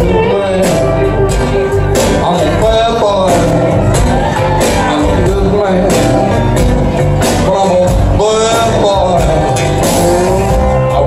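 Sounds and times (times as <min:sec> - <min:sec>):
live band playing: 0:00.0 - 0:11.0.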